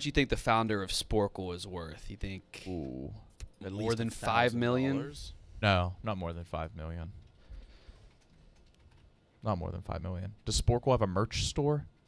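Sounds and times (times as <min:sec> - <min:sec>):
typing on computer keyboard: 0:07.2 - 0:09.5.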